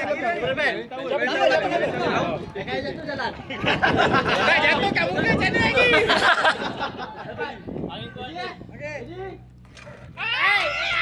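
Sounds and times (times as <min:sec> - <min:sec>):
group of people talking: 0:00.0 - 0:10.3.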